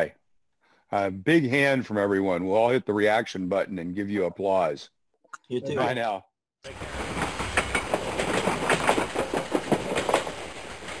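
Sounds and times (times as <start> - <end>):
train rumbling on rails: 6.7 - 11.0
wheels clicking over rail joints: 6.7 - 11.0.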